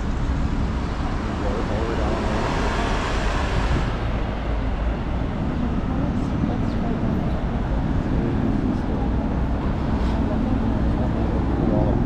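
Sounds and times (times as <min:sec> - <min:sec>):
cars driving through intersection: 0:00.0 - 0:12.0
steady low rumble: 0:00.0 - 0:12.0.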